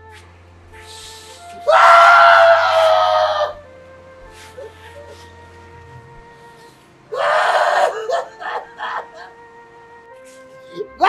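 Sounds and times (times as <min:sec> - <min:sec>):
soft background music: 0:00.0 - 0:11.0
man wailing in grief: 0:01.7 - 0:03.6, 0:07.1 - 0:09.4
breathy sob: 0:07.1 - 0:09.3.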